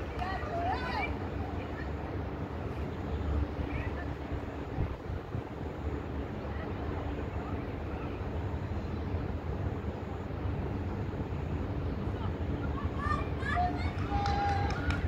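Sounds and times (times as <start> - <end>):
faint hum: 0.0 - 15.0
low outdoor rumble: 0.0 - 15.0.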